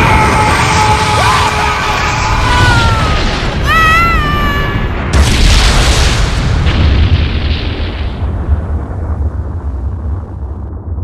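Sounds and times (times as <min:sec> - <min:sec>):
cartoon explosion blast: 0:00.0 - 0:10.3
deep rumble: 0:00.0 - 0:11.0.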